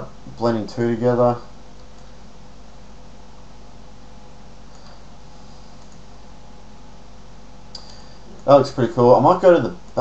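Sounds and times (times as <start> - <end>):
background hiss: 0.0 - 10.0
faint click: 4.7 - 5.0, 5.8 - 6.0, 7.7 - 8.1.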